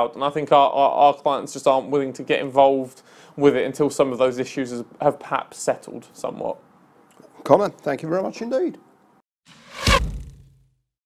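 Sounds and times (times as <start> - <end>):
whoosh: 9.5 - 10.6
deep boom: 9.6 - 10.6.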